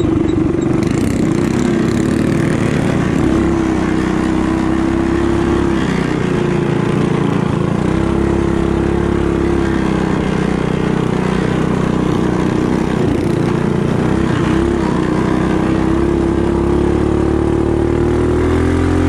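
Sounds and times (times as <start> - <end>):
mini bike engine at high revs: 0.0 - 19.0.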